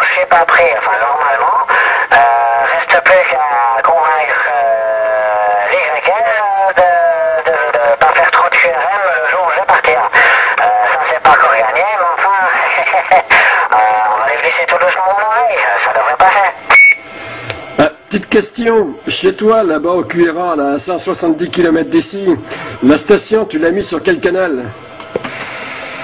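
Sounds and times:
voice over radio speaker: 0.0 - 17.0.

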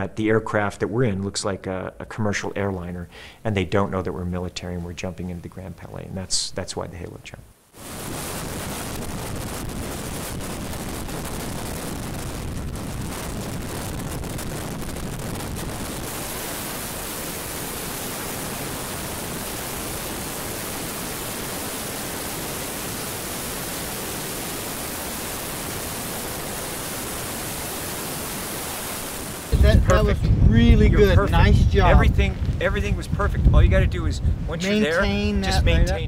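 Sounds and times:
freefall wind on microphone: 7.8 - 36.0.

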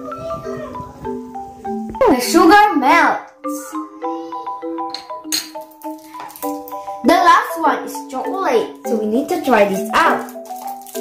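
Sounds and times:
bouncy marimba melody: 0.0 - 11.0.

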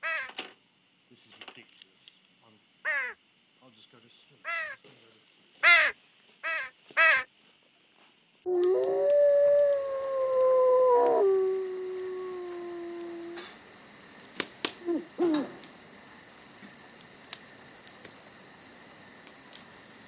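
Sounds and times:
canine howl: 8.5 - 13.6, 14.8 - 15.6
crickets chirring: 8.5 - 20.0
sharp clicks: 8.6 - 13.6.

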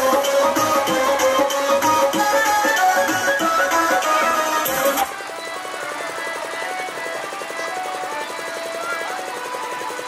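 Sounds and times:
music playing: 0.0 - 10.0.

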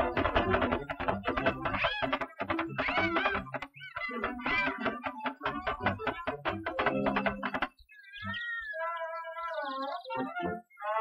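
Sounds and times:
cartoon cat meowing: 1.7 - 5.2.

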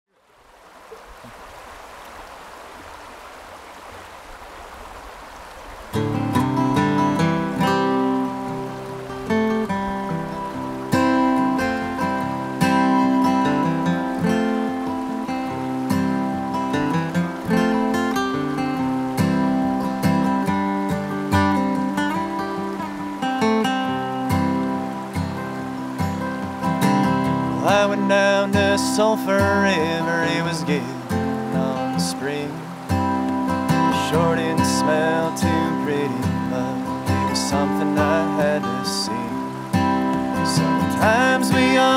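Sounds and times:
running river water: 0.1 - 41.9
acoustic guitar playing: 5.9 - 41.9.

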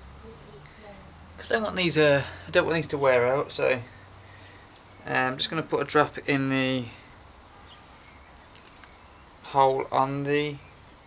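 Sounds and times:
plastic bottle hissing: 7.1 - 9.0.

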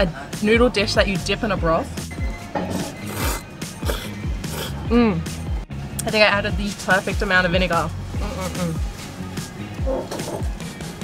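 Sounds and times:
background music with steady beat: 0.0 - 11.0
person slurping noodles: 2.7 - 4.8.

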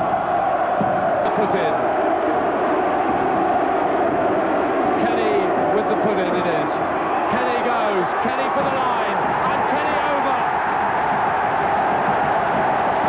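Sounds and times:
crowd chanting: 0.0 - 13.0
stadium crowd din: 0.0 - 13.0.

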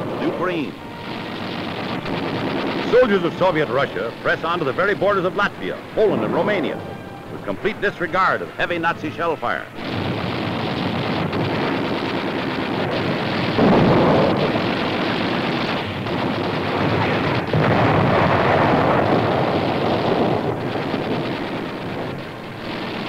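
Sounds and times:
heavy blasts: 0.0 - 23.0
rumble of explosions: 0.0 - 23.0.

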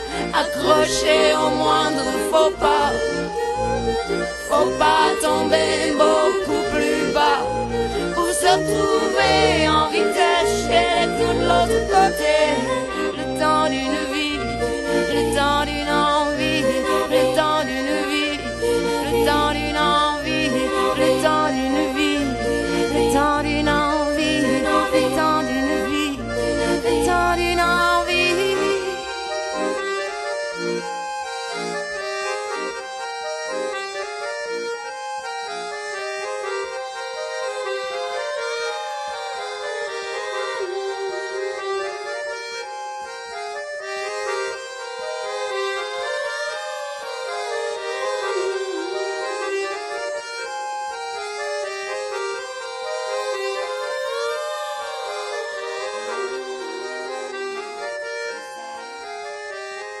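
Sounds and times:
pulsing low chords: 0.0 - 31.3
accordion melody: 0.0 - 60.0.

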